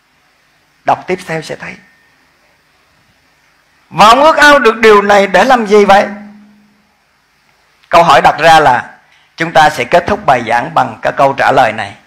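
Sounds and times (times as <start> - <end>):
man speaking: 0.8 - 1.9, 3.9 - 6.6, 7.9 - 12.0.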